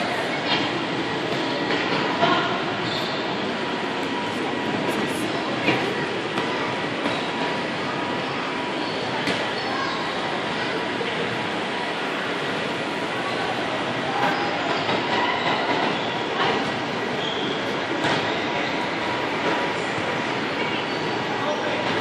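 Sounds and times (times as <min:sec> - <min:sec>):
distant children's voices: 0:05.0 - 0:22.0.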